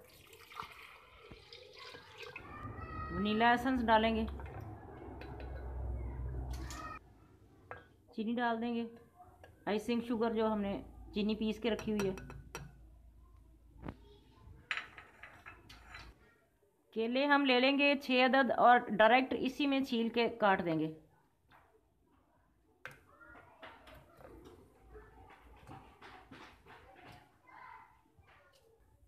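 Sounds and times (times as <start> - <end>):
milk pouring into blender jar: 0.0 - 2.7.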